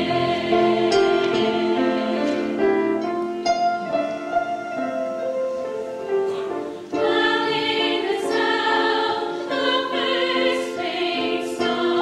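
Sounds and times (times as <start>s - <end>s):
chorus singing sustained chords: 0.0s - 5.0s, 6.4s - 12.0s.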